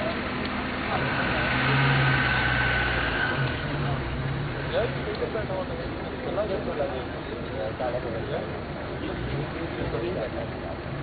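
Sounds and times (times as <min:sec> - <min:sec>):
background noise: 0:00.0 - 0:11.0
vehicle engine running: 0:00.0 - 0:11.0.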